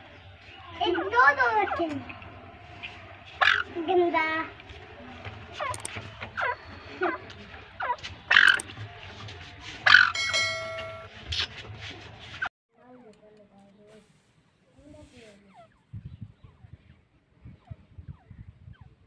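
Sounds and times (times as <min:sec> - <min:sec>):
partridges calling: 0:02.8 - 0:03.7, 0:05.5 - 0:08.8, 0:09.8 - 0:11.1.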